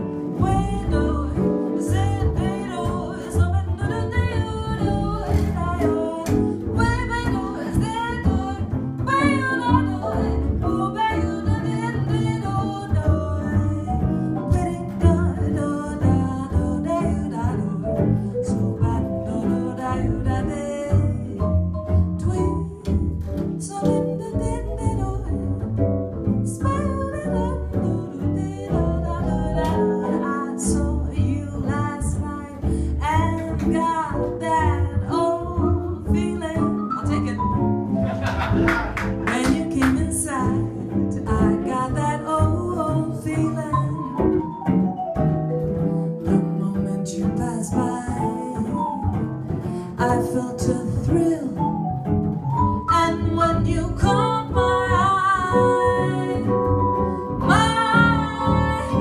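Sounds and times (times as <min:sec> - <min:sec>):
upright double bass: 0:00.0 - 0:59.0.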